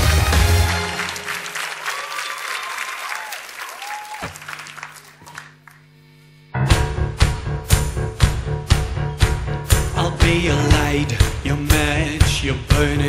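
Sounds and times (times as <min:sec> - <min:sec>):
audience applauding and cheering: 0:00.0 - 0:05.8.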